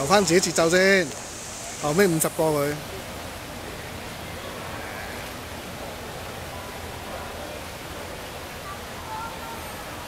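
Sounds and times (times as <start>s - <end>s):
indoor swimming pool noise: 0.0s - 10.0s.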